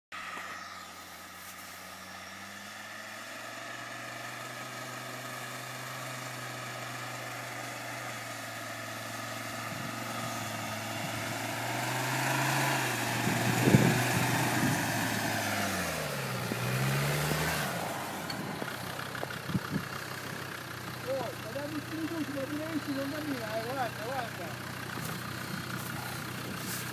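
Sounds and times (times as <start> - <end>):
off-road vehicle engine: 0.1 - 26.9.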